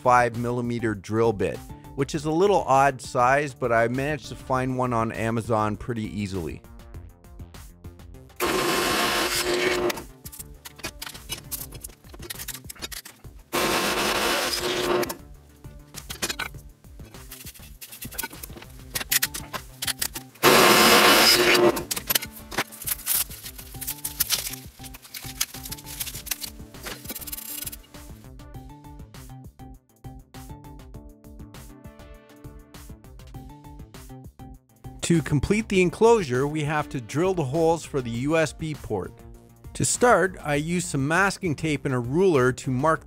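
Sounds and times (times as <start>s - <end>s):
background music: 0.0s - 43.0s
drill press cutting metal: 8.4s - 10.0s, 13.5s - 15.2s, 20.4s - 22.3s.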